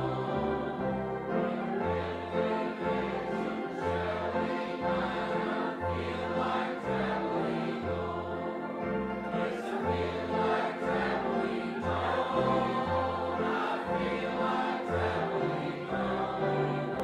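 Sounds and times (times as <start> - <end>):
gospel group singing in harmony: 0.0 - 17.0.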